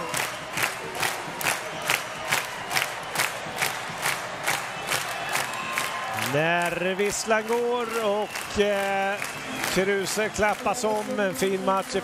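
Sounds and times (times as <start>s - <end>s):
crowd clapping in rhythm: 0.0s - 12.0s
crowd noise and cheering: 0.0s - 12.0s.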